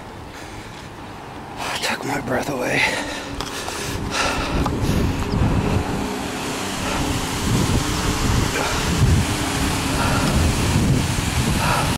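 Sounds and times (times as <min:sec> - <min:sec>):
wind buffeting microphone: 0:03.0 - 0:11.9.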